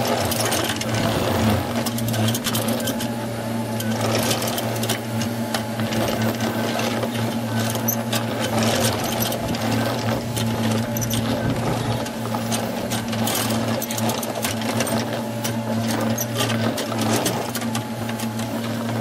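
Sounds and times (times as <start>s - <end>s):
diesel engine droning: 0.0s - 19.0s
rapid mechanical clatter: 0.0s - 19.0s.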